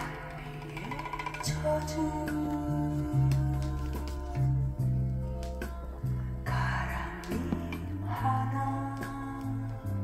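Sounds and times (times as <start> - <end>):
folk songs from vinyl record: 0.0 - 10.0.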